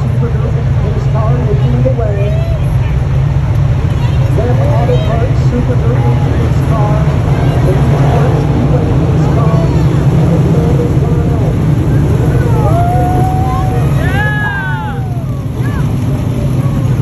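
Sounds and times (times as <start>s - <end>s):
race car engines droning: 0.0s - 17.0s
race car revving: 0.0s - 17.0s.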